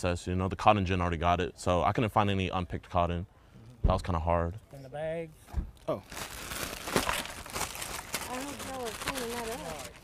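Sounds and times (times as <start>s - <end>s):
plastic bag crinkling: 5.9s - 10.0s.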